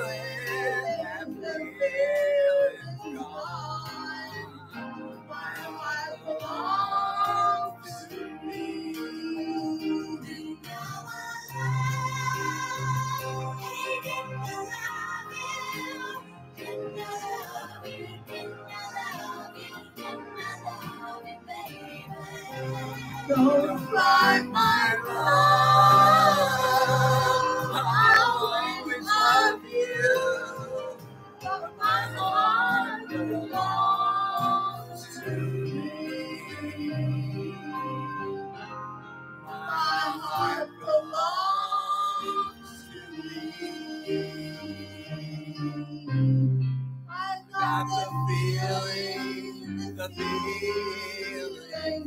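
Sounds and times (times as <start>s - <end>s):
man singing into a microphone: 0.0s - 4.1s, 23.3s - 31.0s, 47.6s - 52.0s
men singing into a microphone: 0.0s - 4.8s, 5.4s - 14.6s, 15.3s - 37.9s, 39.5s - 46.2s, 47.5s - 52.0s
backing music: 0.0s - 52.0s.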